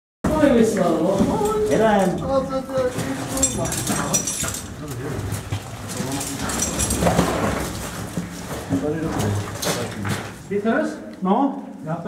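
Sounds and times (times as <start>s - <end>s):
people talking: 0.3s - 5.3s
scuffs and knocks: 2.8s - 10.5s.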